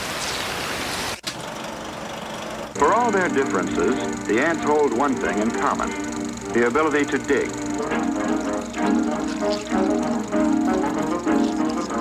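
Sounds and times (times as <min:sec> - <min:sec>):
steady hiss like rain: 0:00.0 - 0:01.2
film projector running: 0:01.2 - 0:12.0.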